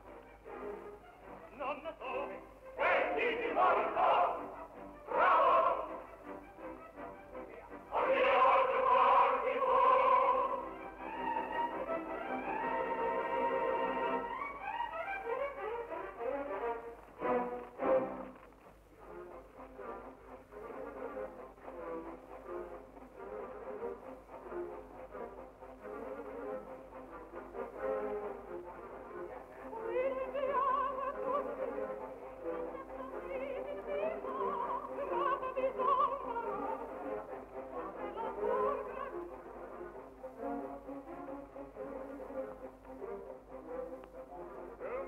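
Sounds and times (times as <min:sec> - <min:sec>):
orchestra playing: 0:00.0 - 0:45.0.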